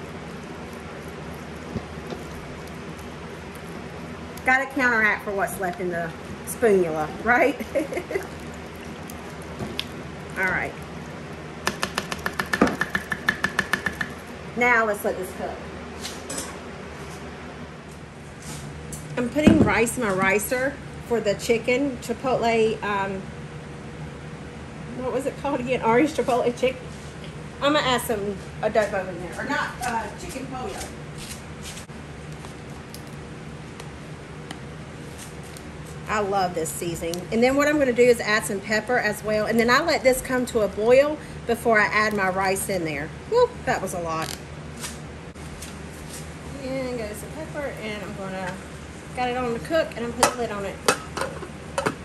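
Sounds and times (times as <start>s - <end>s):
low background hum: 0.0s - 52.0s.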